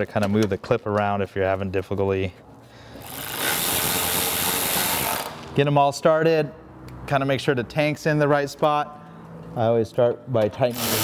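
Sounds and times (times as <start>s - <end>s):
cordless drill driving screw: 3.2s - 5.4s, 10.7s - 11.0s.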